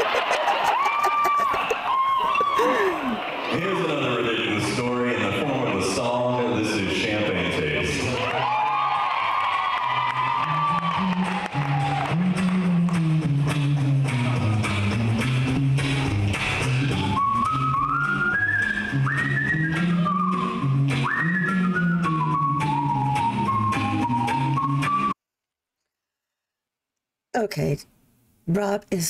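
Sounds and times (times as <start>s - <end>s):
whistled melody: 16.6s - 25.2s.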